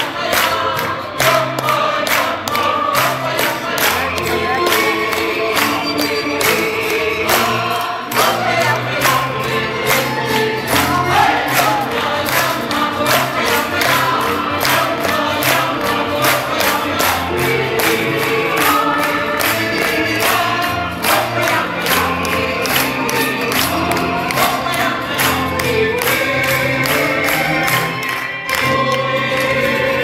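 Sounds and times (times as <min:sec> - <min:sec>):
audience clapping along: 0:00.0 - 0:30.0
group singing over music: 0:00.0 - 0:30.0.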